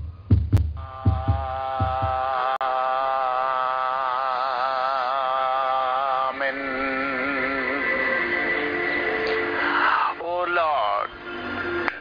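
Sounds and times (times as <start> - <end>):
heartbeat double thumps: 0.0 - 2.3.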